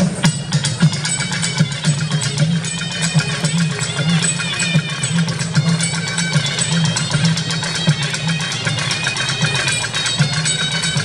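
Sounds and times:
fast folk dance drumming: 0:00.0 - 0:11.0.

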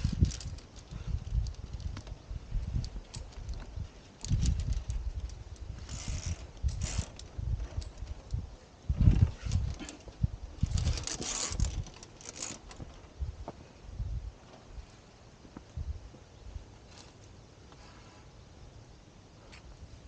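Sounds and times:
carabiners clicking on steel cable: 0:00.0 - 0:08.4, 0:09.5 - 0:12.9.

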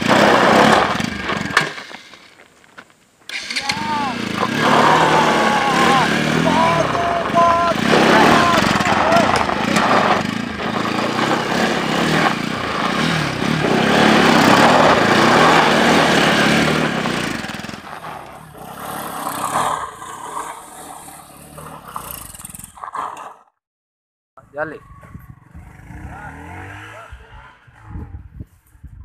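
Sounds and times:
motorcycle engine revving: 0:00.0 - 0:02.4, 0:03.3 - 0:23.5, 0:24.8 - 0:28.4
tyre scraping over loose dirt: 0:00.0 - 0:23.3.

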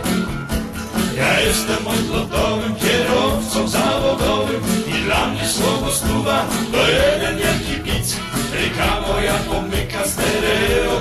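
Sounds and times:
guitar accompaniment with beat: 0:00.0 - 0:11.0
person singing: 0:01.1 - 0:11.0.

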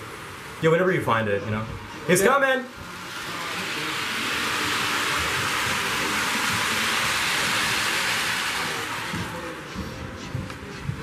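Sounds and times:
model train running on track: 0:00.0 - 0:11.0.

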